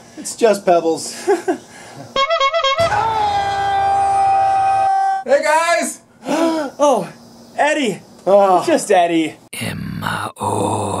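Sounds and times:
laughter: 0:01.1 - 0:02.1.

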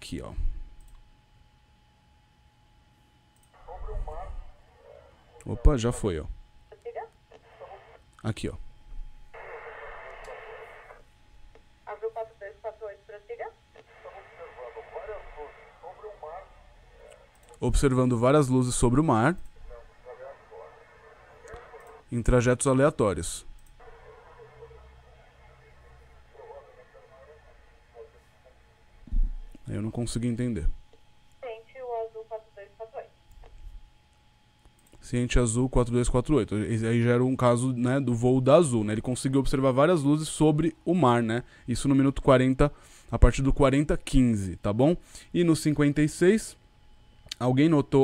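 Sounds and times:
radio static hiss: 0:03.5 - 0:08.6, 0:09.3 - 0:11.2, 0:11.8 - 0:29.1
air traffic control radio voice: 0:13.8 - 0:17.3, 0:19.1 - 0:21.8, 0:23.8 - 0:28.6.

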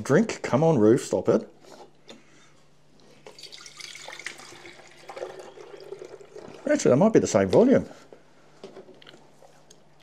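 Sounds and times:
milk pouring into glass jar: 0:03.2 - 0:06.9.

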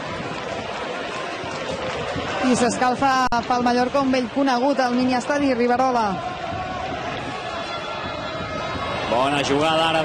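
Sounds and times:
murmur of stadium crowd: 0:00.0 - 0:10.0.

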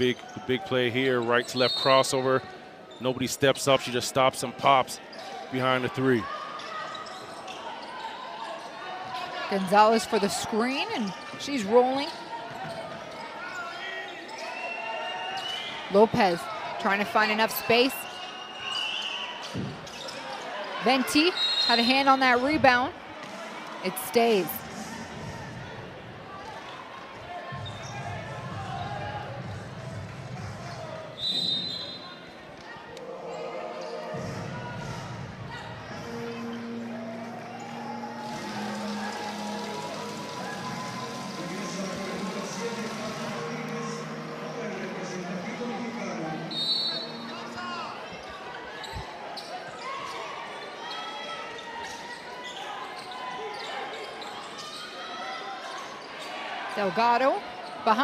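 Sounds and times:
crowd chatter: 0:00.0 - 0:58.0.

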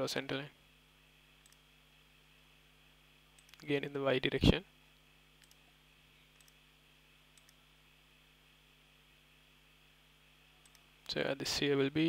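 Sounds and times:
steady low hum: 0:00.0 - 0:12.0
computer mouse clicks: 0:01.4 - 0:01.6, 0:03.4 - 0:03.7, 0:05.4 - 0:05.6, 0:06.3 - 0:06.6, 0:07.3 - 0:07.6, 0:10.6 - 0:10.9.

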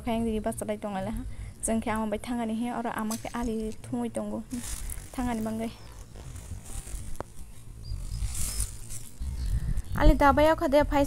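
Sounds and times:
low rumbling microphone noise: 0:00.0 - 0:11.0
person speaking: 0:03.0 - 0:05.9.

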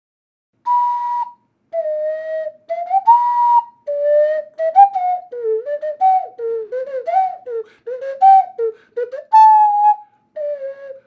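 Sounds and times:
ocarina playing slow tune: 0:00.7 - 0:11.0.

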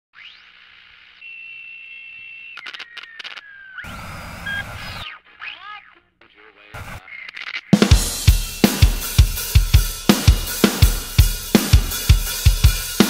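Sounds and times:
static burst with falling whistle: 0:00.2 - 0:05.1
gliding electronic whistling tones: 0:00.2 - 0:05.2
short falling chirp: 0:01.1 - 0:05.6
crackling clicks: 0:02.1 - 0:05.1.

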